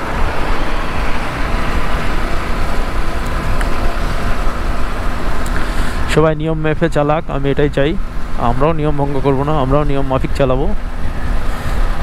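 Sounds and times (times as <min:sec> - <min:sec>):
wind rushing over microphone: 0:00.0 - 0:06.2
road noise: 0:00.0 - 0:12.0.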